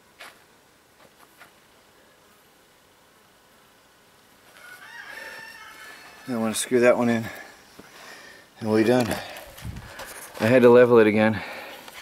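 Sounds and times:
rooster crowing: 4.5 - 6.8.

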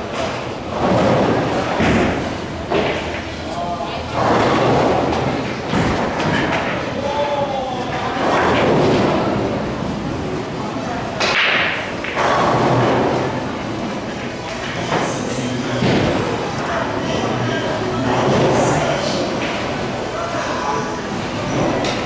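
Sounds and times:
people talking: 2.7 - 22.0
pool balls knocking together: 4.1 - 7.0, 7.8 - 9.6, 11.2 - 15.1.

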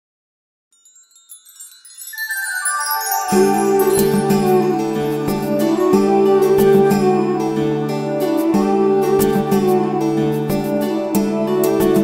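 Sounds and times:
wind chimes tinkling: 0.8 - 6.1
song music: 2.0 - 12.0.

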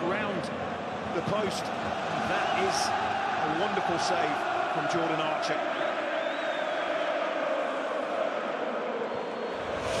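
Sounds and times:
stadium crowd noise: 0.0 - 10.0
faint high whistle: 5.8 - 7.0, 9.0 - 10.0.

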